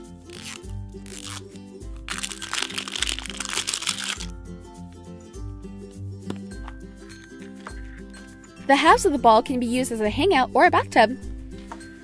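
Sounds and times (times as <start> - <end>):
background music with steady beat: 0.0 - 2.3, 2.9 - 12.0
plastic film crinkling and tearing: 0.3 - 4.3.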